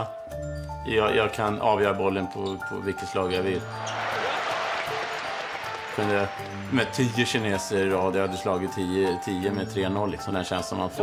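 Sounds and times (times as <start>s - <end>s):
faint background music: 0.0s - 11.0s
crowd applauding and cheering: 3.7s - 7.6s.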